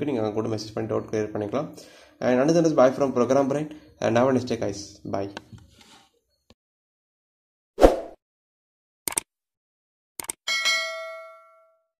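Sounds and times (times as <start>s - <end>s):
bright bell ding: 10.5s - 12.0s.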